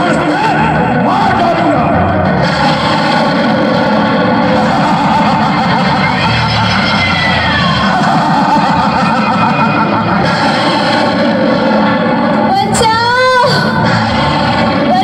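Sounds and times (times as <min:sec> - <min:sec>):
dramatic sound effects: 0:00.0 - 0:15.0
loudspeaker music soundtrack: 0:00.0 - 0:15.0.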